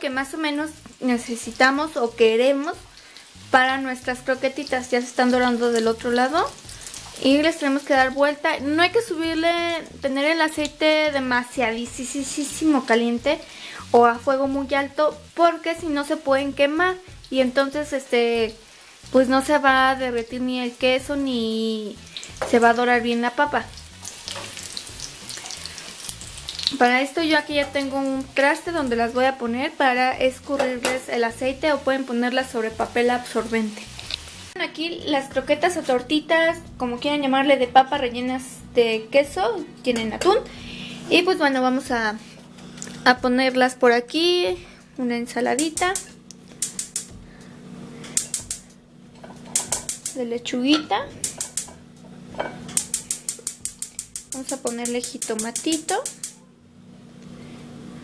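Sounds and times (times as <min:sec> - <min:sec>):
hot oil sizzling and crackling: 0:00.0 - 0:58.0
steady low hum: 0:45.8 - 0:50.0.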